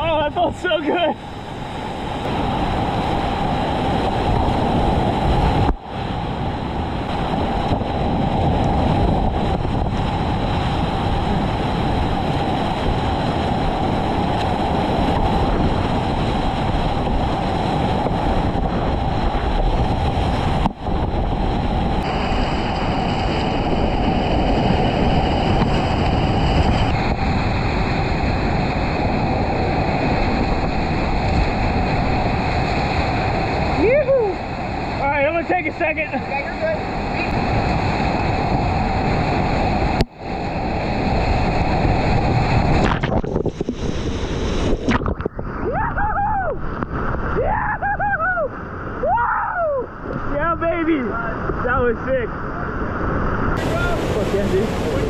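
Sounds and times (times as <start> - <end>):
whitewater rapids rushing: 0.0 - 50.4, 53.5 - 55.0
wind buffeting microphone: 0.0 - 55.0.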